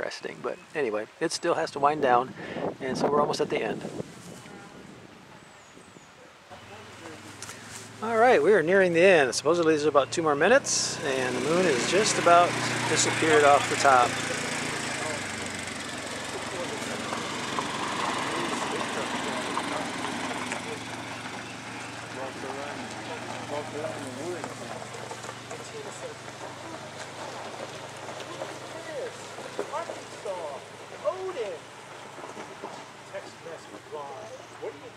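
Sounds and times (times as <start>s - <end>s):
dense steady hiss: 0.0s - 34.9s
garbled chattering voices: 8.0s - 27.2s.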